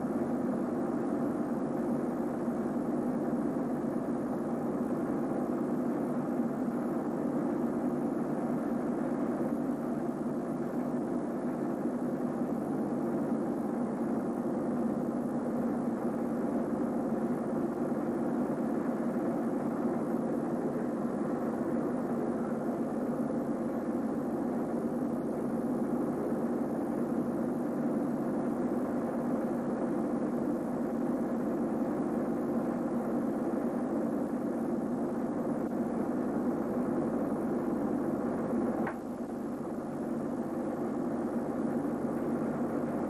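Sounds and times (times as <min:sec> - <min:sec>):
steady rumbling noise: 0:00.0 - 0:43.0.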